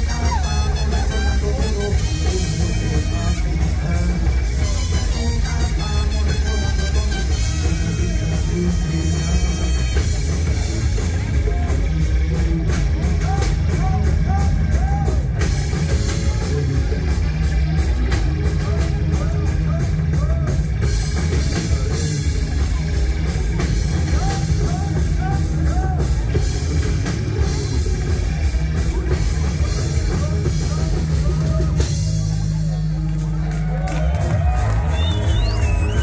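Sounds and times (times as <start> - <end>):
rock band playing: 0.0 - 36.0.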